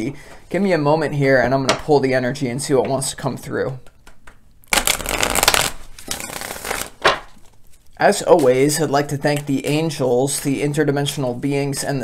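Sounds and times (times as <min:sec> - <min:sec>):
cards being shuffled: 0:04.0 - 0:08.6.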